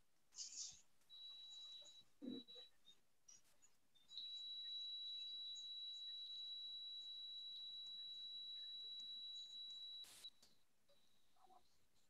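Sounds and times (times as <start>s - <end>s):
faint high-pitched tone: 0.4s - 12.0s.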